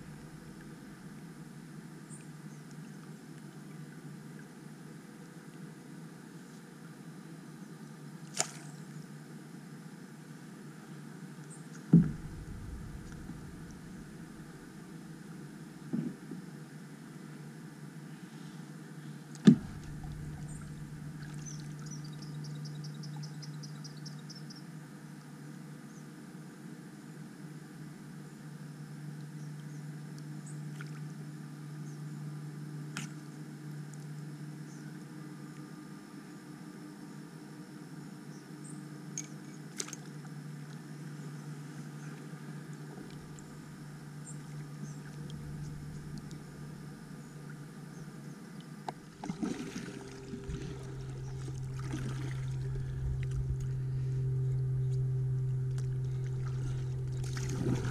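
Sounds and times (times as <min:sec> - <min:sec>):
steady low hum: 0:00.0 - 0:57.9
paddle strokes splashing in water: 0:48.9 - 0:53.8, 0:55.8 - 0:57.9.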